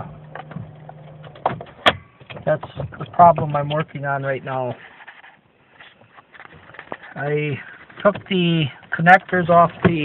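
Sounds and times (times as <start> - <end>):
car engine idling: 0.0 - 2.8.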